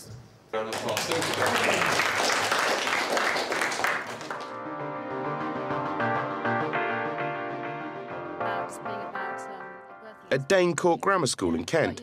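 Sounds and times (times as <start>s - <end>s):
children clapping: 0.6s - 4.6s
background music with sustained notes: 4.2s - 11.3s.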